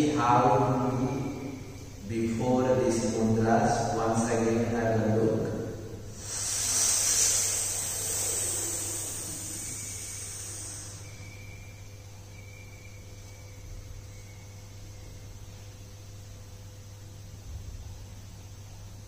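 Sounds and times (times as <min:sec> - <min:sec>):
faint low hum: 0:00.0 - 0:19.0
hissing in-breath through lips: 0:06.1 - 0:11.6.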